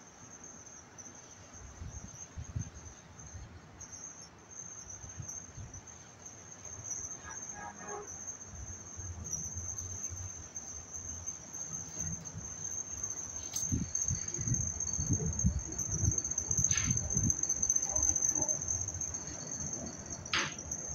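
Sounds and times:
high-pitched insect trill: 0.0 - 20.9.

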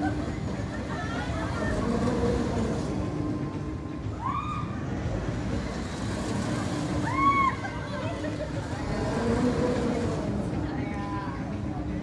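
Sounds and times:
low mechanical rumble: 0.0 - 12.0.

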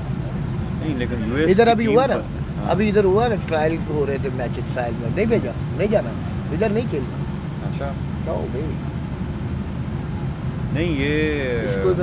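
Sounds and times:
low engine-like rumble: 0.0 - 12.0.

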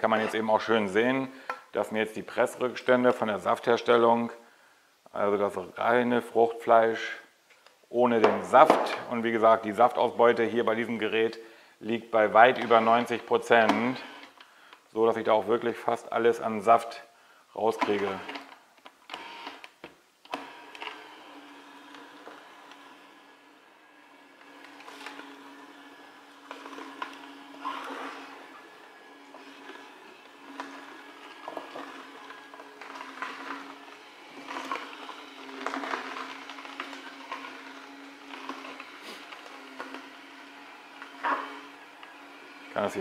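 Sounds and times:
juicer crushing produce: 0.0 - 1.9, 8.1 - 11.2, 12.2 - 16.8, 17.6 - 43.0
juicer motor hum: 12.2 - 14.5, 17.7 - 43.0.

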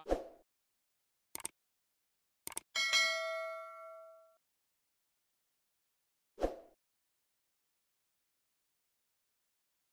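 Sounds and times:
quick clicks: 1.3 - 1.6, 2.4 - 2.7
notification bell ding: 2.8 - 4.3.

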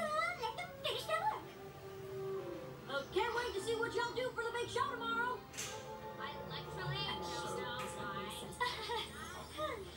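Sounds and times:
soft background music: 0.0 - 9.9.

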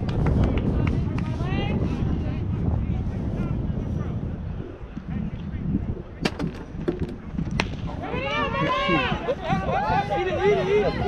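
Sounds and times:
wind rumble on microphone: 0.0 - 11.0
bat striking ball: 6.2 - 7.9.

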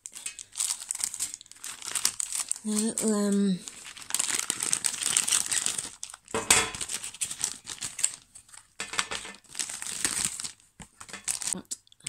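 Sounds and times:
plastic packaging crinkling: 0.0 - 11.6.

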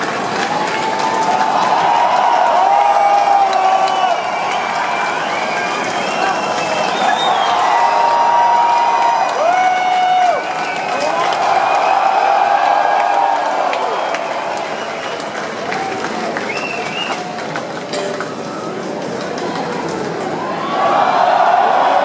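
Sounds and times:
audience cheering and applauding: 0.0 - 22.0
shouts and whoops: 0.4 - 17.5, 20.4 - 22.0.

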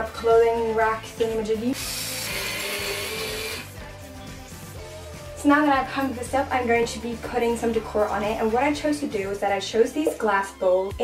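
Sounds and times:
background music: 0.0 - 11.0
power drill whirring: 1.8 - 3.8.

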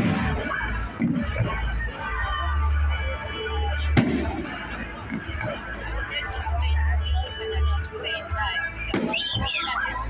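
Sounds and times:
firework bang with echo: 4.0 - 4.5.

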